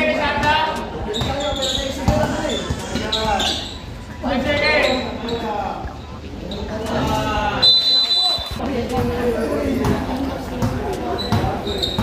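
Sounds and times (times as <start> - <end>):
basketball bouncing on a hard court: 1.0 - 2.8, 9.8 - 12.0.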